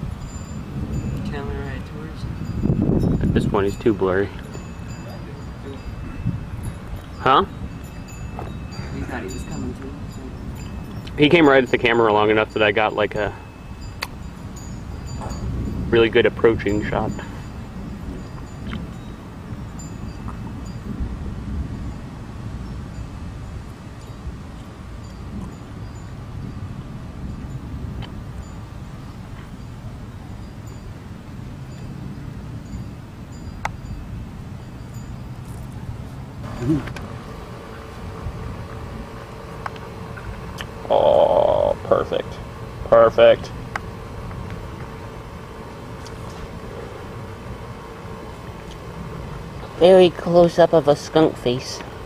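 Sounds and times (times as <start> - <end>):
low outdoor background rumble: 0.0 - 52.0
wind on microphone: 0.0 - 52.0.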